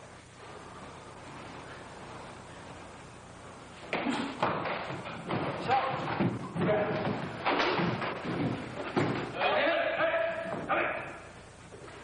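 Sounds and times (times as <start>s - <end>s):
low hall ambience: 0.0s - 12.0s.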